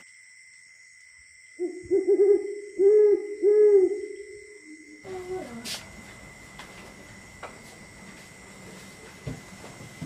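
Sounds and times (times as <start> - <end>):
faint high whine: 0.0 - 10.0
owl hooting: 1.6 - 5.9.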